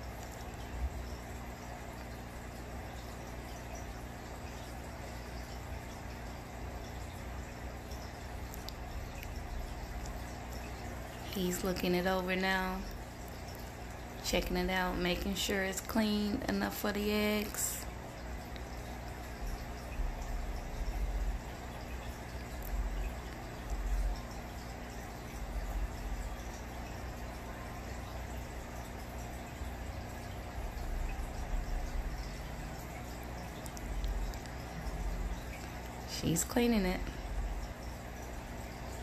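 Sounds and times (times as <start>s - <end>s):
low steady hum: 0.0s - 39.0s
trickling bubbling water: 0.0s - 39.0s.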